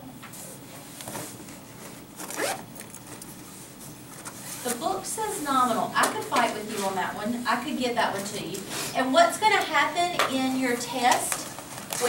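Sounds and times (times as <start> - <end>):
zipper pulled: 2.2 - 2.9.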